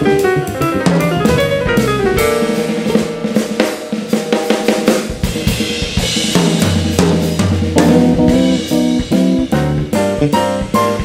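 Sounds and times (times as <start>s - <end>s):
deep bass guitar notes: 0.0s - 3.4s, 7.6s - 11.0s
drum kit playing: 0.0s - 11.0s
piano: 0.0s - 11.0s.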